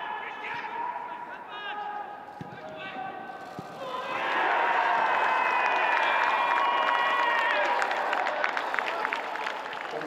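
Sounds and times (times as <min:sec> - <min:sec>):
players shouting: 0:00.0 - 0:09.4
ball kicks: 0:02.4 - 0:02.8
crowd cheering: 0:02.7 - 0:10.0.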